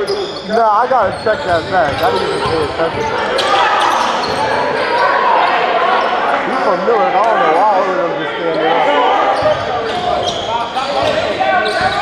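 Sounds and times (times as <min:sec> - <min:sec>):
basketball bouncing on gym floor: 0:01.0 - 0:03.2
people calling out: 0:08.5 - 0:12.0.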